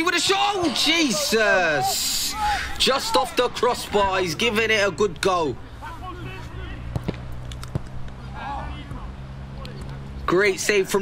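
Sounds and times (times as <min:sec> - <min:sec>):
distant shouts of players: 0:00.0 - 0:04.5, 0:05.5 - 0:07.1, 0:08.2 - 0:10.6.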